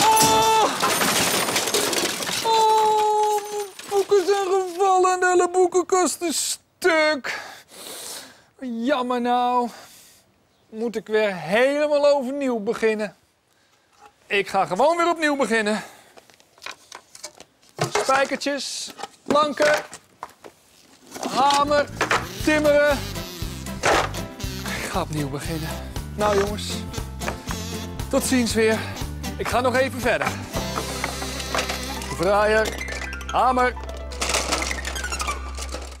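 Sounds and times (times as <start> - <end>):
tools clattering in toolbox: 0.2 - 4.8, 16.6 - 20.0, 30.2 - 36.0
wooden planks knocking: 16.6 - 20.5, 23.8 - 24.3, 26.2 - 27.5, 29.4 - 35.0.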